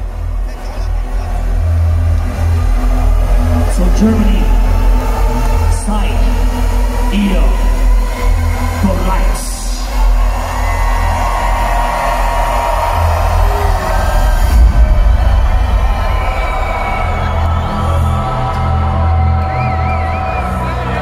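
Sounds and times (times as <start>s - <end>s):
crowd cheering and whooping: 0.0s - 21.0s
loud hardstyle music: 0.0s - 21.0s.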